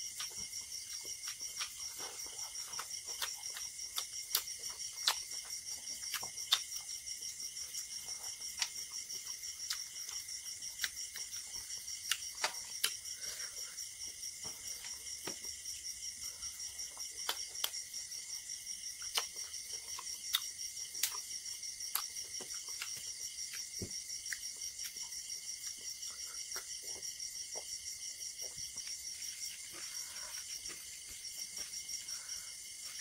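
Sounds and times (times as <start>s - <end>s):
crickets chirping: 0.0s - 33.0s.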